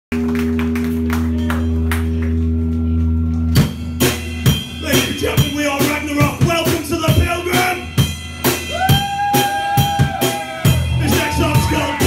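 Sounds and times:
distorted guitar and bass chord: 0:00.1 - 0:12.0
metal band playing: 0:00.3 - 0:12.0.

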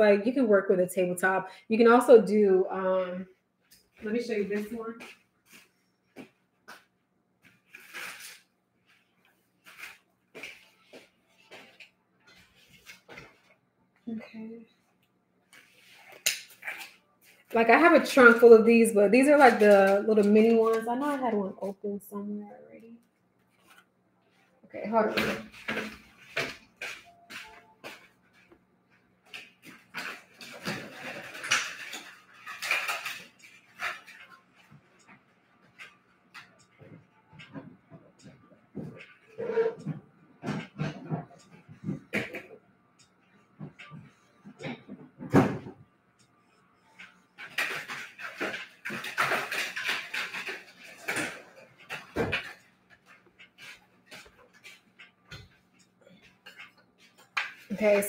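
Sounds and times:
wooden easel scraping: 0:07.7 - 0:08.4, 0:39.3 - 0:41.4.

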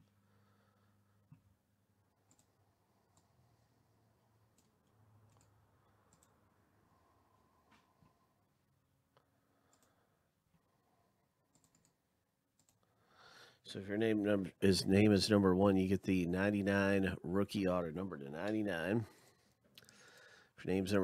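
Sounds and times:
computer mouse and keyboard clicks: 0:02.2 - 0:02.5, 0:04.6 - 0:06.4, 0:09.7 - 0:10.0, 0:11.5 - 0:12.0, 0:12.6 - 0:12.8.

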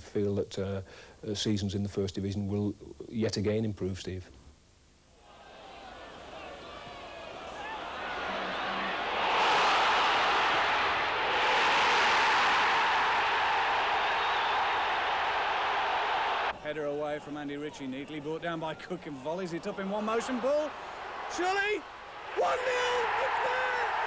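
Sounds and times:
football crowd roar: 0:05.2 - 0:24.0.

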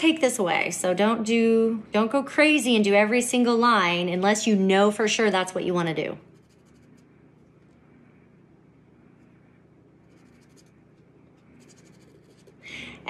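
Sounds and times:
pen tip scratching on paper: 0:06.3 - 0:07.8, 0:10.0 - 0:12.6.

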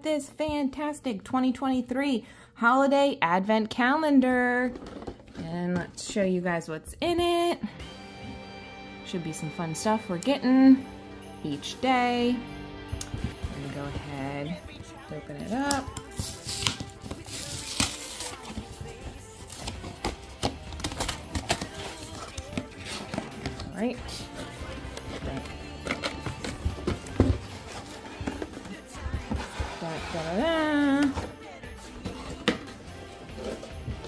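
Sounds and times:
background music: 0:05.0 - 0:34.0
cardboard box scraping and knocking: 0:15.5 - 0:31.4.

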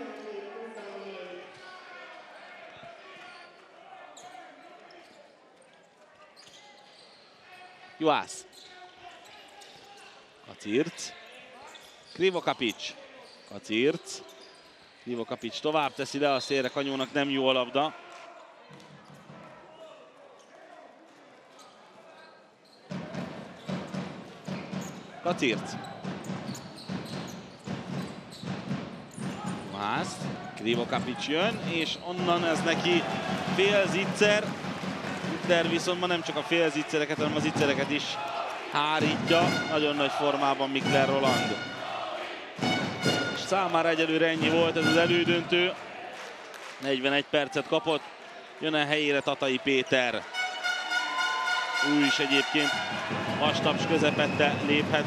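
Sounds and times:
murmur of crowd: 0:00.0 - 0:06.6, 0:27.4 - 0:55.0
commentator speaking: 0:29.7 - 0:34.5, 0:35.3 - 0:41.6, 0:43.4 - 0:45.8.

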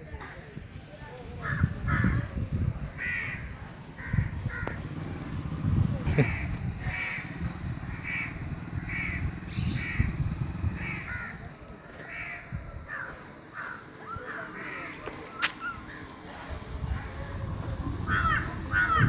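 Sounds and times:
crow cawing: 0:03.0 - 0:04.8, 0:06.2 - 0:10.1, 0:10.8 - 0:11.4, 0:12.0 - 0:15.1, 0:18.1 - 0:19.0.

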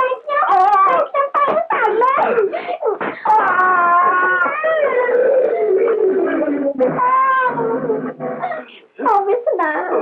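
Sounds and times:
high voice wailing: 0:03.3 - 0:08.6.

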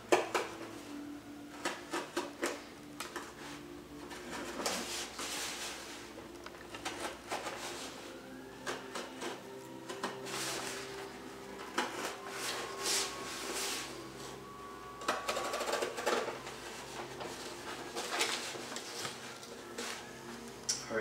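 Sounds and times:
paper rustling: 0:15.3 - 0:20.1.

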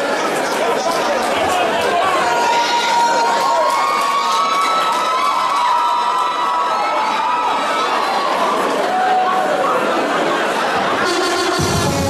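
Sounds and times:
audience cheering and shouting: 0:01.6 - 0:12.0.

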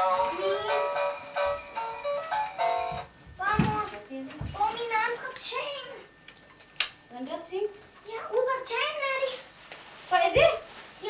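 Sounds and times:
young child talking: 0:03.4 - 0:06.1, 0:07.1 - 0:09.5
sharp click: 0:06.8 - 0:07.0.

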